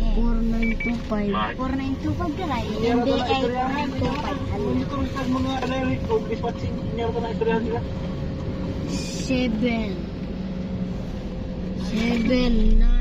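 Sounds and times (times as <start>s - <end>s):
car road and engine noise: 0.0s - 13.0s.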